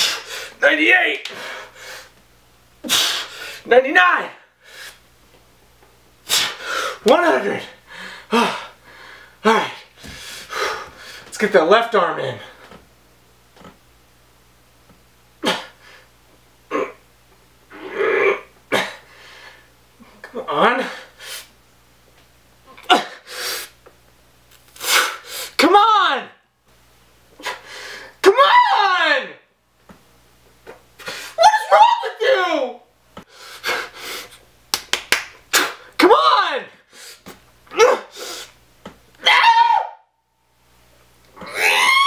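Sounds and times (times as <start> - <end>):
hard puffs of breath: 6.3 - 7.0, 23.2 - 23.8, 33.2 - 34.4, 38.1 - 38.6
man grunting: 8.3 - 8.7, 9.4 - 9.9
man straining scream: 28.2 - 29.4, 31.4 - 32.8, 36.0 - 36.7, 37.7 - 38.1, 39.2 - 40.1, 41.4 - 42.0.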